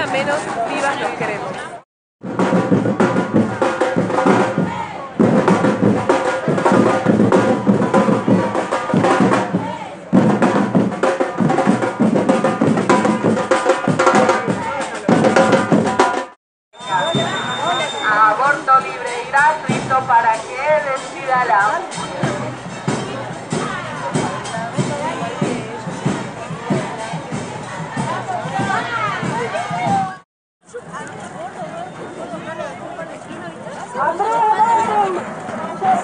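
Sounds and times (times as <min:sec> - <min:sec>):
crowd chanting and shouting: 0:00.0 - 0:30.2, 0:30.9 - 0:36.0.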